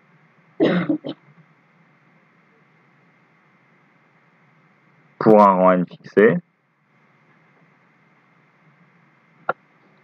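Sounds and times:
person clearing throat: 0.6s - 1.2s.

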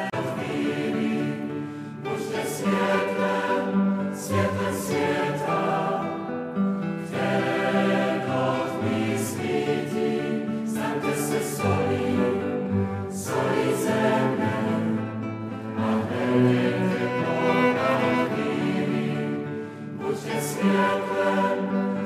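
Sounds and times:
choir singing a slow hymn: 0.0s - 22.0s.

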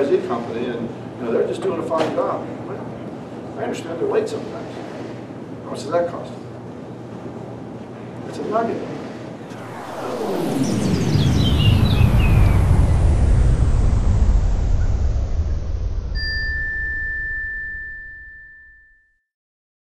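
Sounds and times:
deep rumble: 9.5s - 17.0s
whoosh falling in pitch: 9.5s - 17.2s
high ringing tone: 16.0s - 19.2s.

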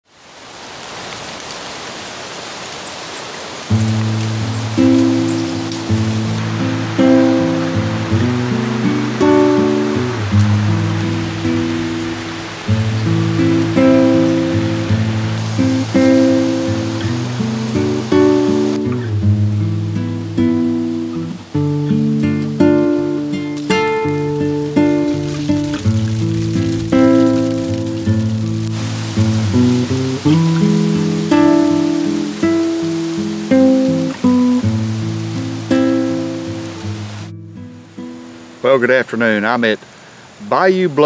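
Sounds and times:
steady hiss: 0.1s - 41.0s
acoustic guitar music: 3.7s - 39.8s, 40.4s - 41.0s.

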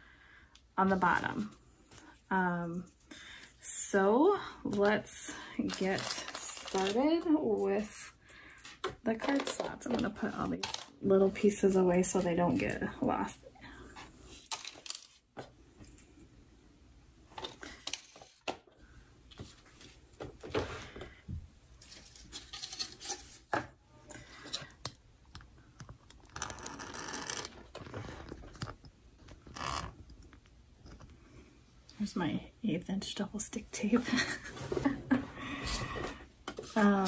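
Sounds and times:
rustling and crinkling: 4.7s - 8.0s, 8.6s - 16.2s, 19.3s - 31.3s.

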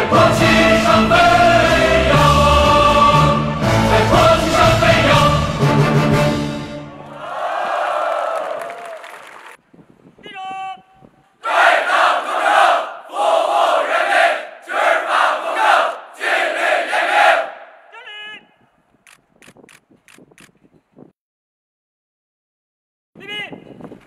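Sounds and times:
crowd shouting together: 6.9s - 8.6s, 11.4s - 18.0s.

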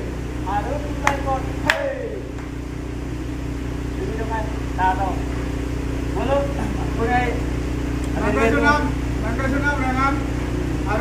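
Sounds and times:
low machine hum: 0.0s - 11.0s.

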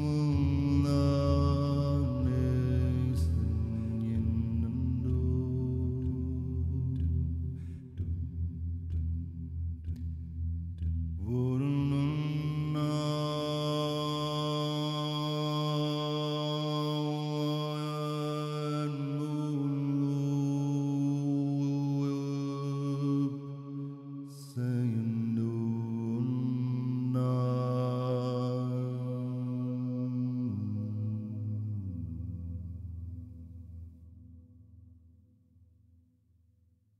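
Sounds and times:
man chanting long held notes: 0.0s - 7.3s.

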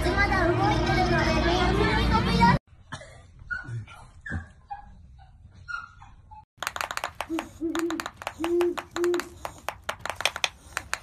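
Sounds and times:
owl hooting: 7.3s - 9.6s.

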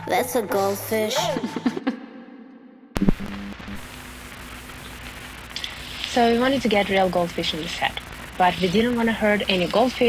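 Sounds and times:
low hum: 0.8s - 10.0s
television static hiss: 3.0s - 10.0s.

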